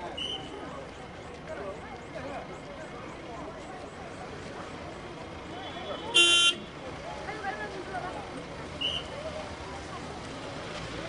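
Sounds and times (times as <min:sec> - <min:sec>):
people chattering: 0:00.0 - 0:11.0
short car horn toot: 0:06.1 - 0:06.6.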